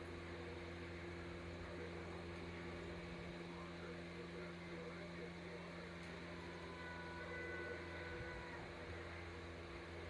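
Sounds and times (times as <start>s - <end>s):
low room hum: 0.0s - 10.0s
soft held tones from television: 0.1s - 10.0s.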